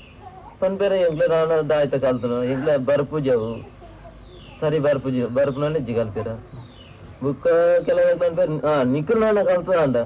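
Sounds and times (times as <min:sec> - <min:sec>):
man speaking: 0:00.6 - 0:03.6, 0:04.6 - 0:06.6, 0:07.2 - 0:10.0.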